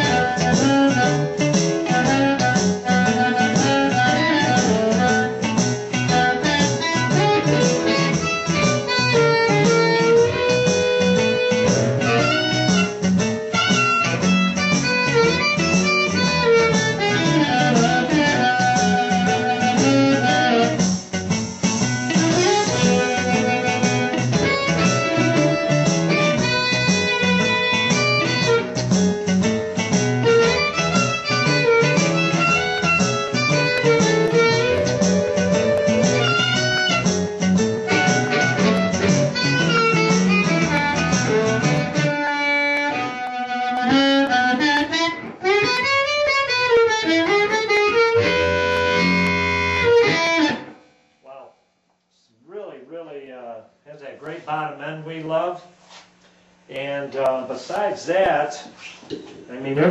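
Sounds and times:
amplified blues harmonica: 0.0 - 50.8
guitar backing: 0.0 - 51.5, 55.9 - 59.9.

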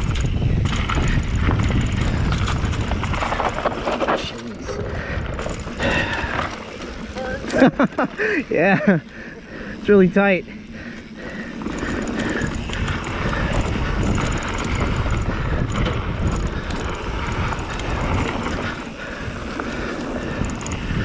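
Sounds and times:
wind on microphone: 0.0 - 7.2, 11.0 - 21.0
bike tyres on loose dirt: 0.0 - 21.0.

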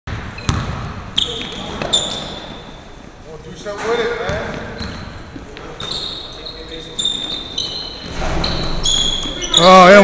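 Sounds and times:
sneakers squeaking on hardwood floor: 0.1 - 10.0
gym hubbub: 0.3 - 10.0.

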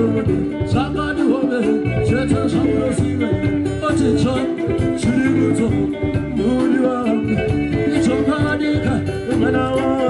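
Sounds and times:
hand drum percussion: 0.0 - 10.0
man singing: 0.0 - 10.0
strummed acoustic guitar: 0.0 - 10.0.

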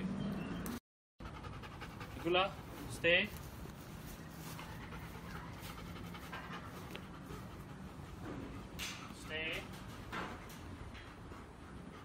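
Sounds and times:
dog panting: 1.2 - 12.0.

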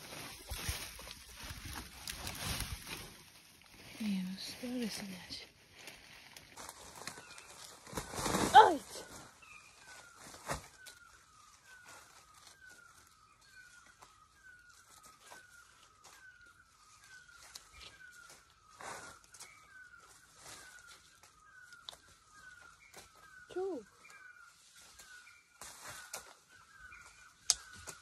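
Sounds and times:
plants rustling: 0.0 - 28.0
faint bird call: 17.4 - 24.3
plants snapping: 27.4 - 28.0.

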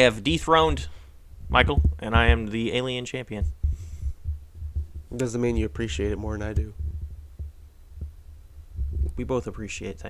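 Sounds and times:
speech: 0.0 - 0.9, 1.5 - 3.5, 5.1 - 6.8, 9.1 - 10.0
low rumbling hum: 0.0 - 9.6
microphone handling knocks: 1.4 - 2.7, 3.4 - 9.2.

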